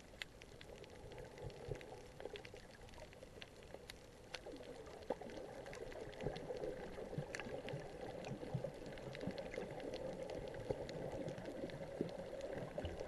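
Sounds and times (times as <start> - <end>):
muffled underwater rush: 0.0 - 13.0
sharp underwater clicks and crackles: 0.0 - 13.0.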